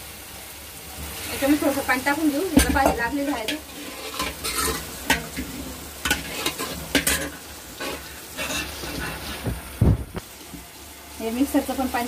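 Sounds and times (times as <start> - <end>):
oil sizzling: 0.0 - 12.0
metal spoon scraping a pan: 2.6 - 9.5.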